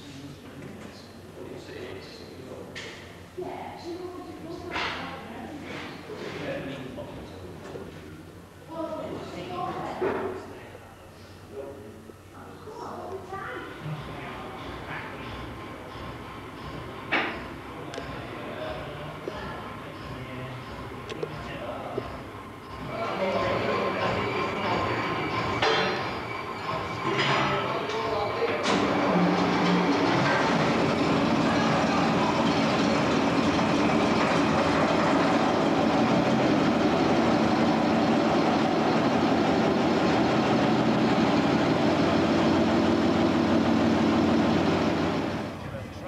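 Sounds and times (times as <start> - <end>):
diesel locomotive engine running: 14.0 - 45.9
metal clanks: 24.1 - 31.0.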